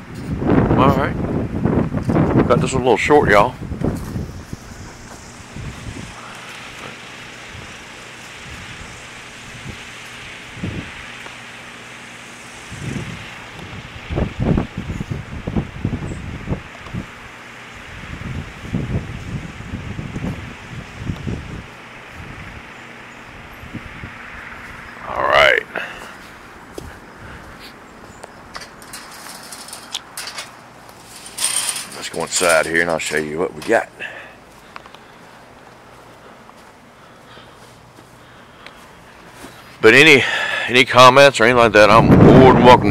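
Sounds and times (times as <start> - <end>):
wind buffeting microphone: 0.0 - 11.4, 12.5 - 25.1, 26.0 - 33.8, 41.6 - 42.9
rushing wind: 0.0 - 42.9.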